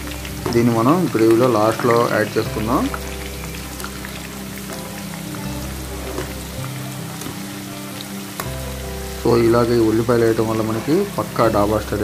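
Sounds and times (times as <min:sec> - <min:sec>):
background music with held chords: 0:00.0 - 0:12.0
vegetables sizzling in hot oil: 0:00.0 - 0:12.0.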